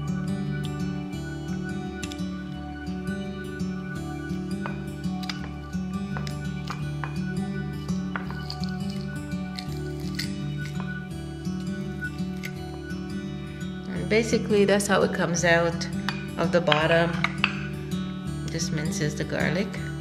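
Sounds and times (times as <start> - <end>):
instrumental background music: 0.0 - 20.0
garlic press crushing garlic: 8.1 - 11.0, 12.3 - 12.7.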